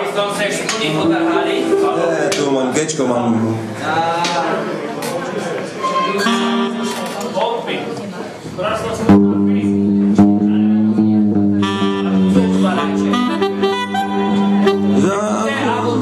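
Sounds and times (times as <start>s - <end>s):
voices in the room: 0.0s - 16.0s
keyboard held chord: 1.0s - 3.9s, 5.8s - 7.2s.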